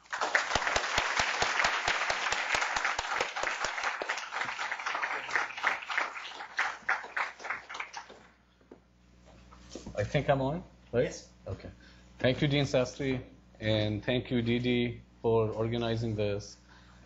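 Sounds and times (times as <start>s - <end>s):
audience applauding: 0.0s - 8.3s.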